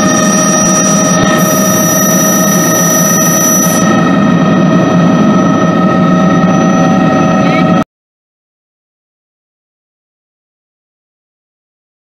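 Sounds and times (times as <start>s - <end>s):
helicopter turbine and rotor: 0.0s - 7.8s
high whining tones: 0.0s - 7.8s.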